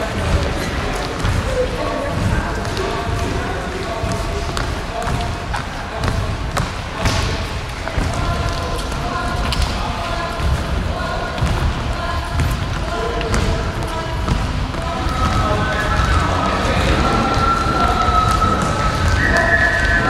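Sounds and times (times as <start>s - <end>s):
dancers' shoes shuffling on wooden floor: 0.0s - 20.0s.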